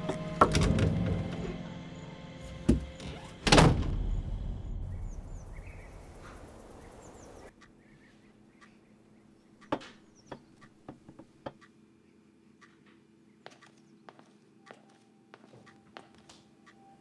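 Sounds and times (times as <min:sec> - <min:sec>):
door slamming shut: 0:00.4 - 0:01.5, 0:02.7 - 0:04.2.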